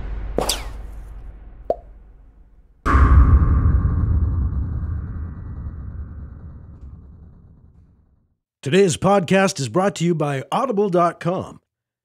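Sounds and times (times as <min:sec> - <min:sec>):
short pop: 0:00.4 - 0:00.9
quick swoosh: 0:00.4 - 0:01.0.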